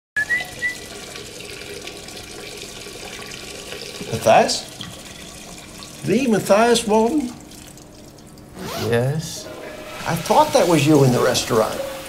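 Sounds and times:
faucet water running into sink: 0:00.2 - 0:08.6, 0:09.7 - 0:12.0.

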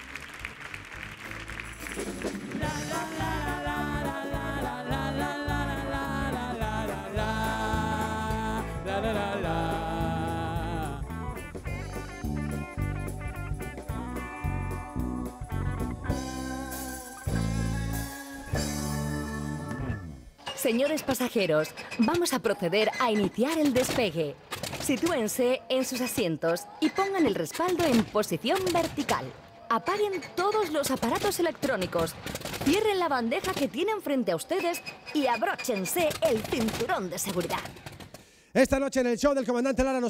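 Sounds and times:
live rock band playing: 0:05.8 - 0:20.2.

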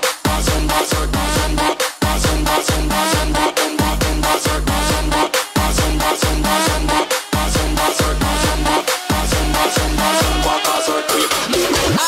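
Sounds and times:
electronic dance music: 0:00.0 - 0:12.0.

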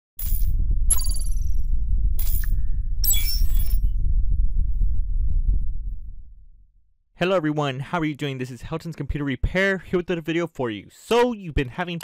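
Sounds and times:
deep bass drone: 0:00.4 - 0:06.9.

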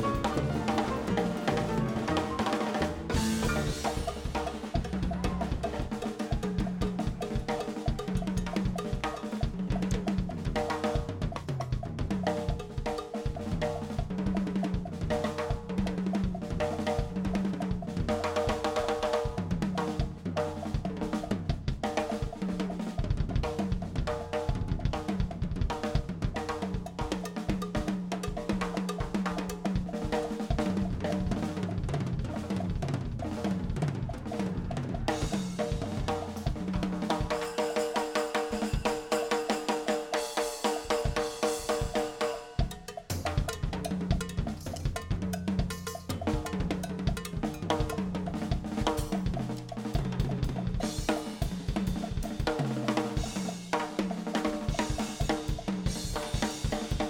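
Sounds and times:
cymbals: 0:00.0 - 0:11.0, 0:26.3 - 0:57.0
drum kit played fast: 0:00.0 - 0:57.0.

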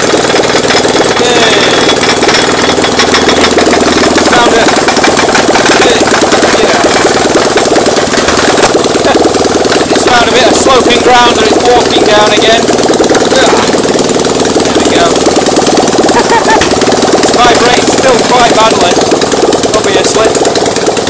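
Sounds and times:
generator engine running: 0:00.0 - 0:21.0.

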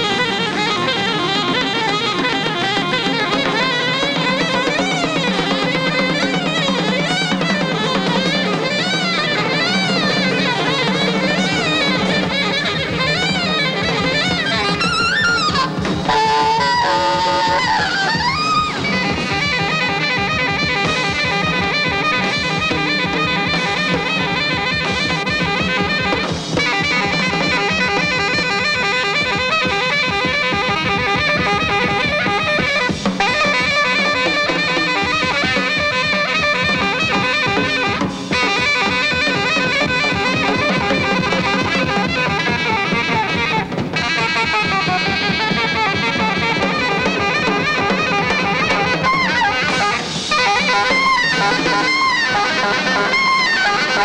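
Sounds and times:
alto saxophone: 0:00.0 - 0:54.0
drum kit: 0:00.0 - 0:54.0.

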